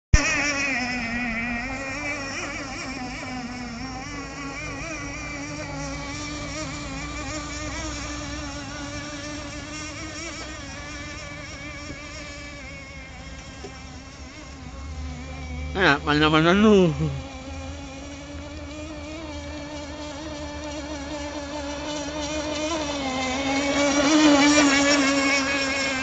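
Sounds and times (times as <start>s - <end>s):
model boat engine high revs: 0.2s - 26.0s.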